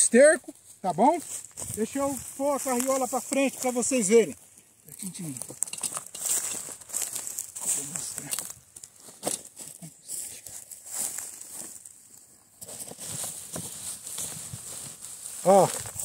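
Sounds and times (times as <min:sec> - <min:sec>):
rustling and crunching straw: 0:00.5 - 0:16.0.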